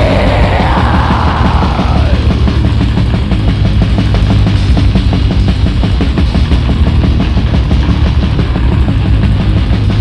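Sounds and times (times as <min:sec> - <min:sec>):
bass guitar: 0:00.0 - 0:10.0
distorted guitars: 0:00.0 - 0:10.0
fast dense drumming: 0:00.0 - 0:10.0.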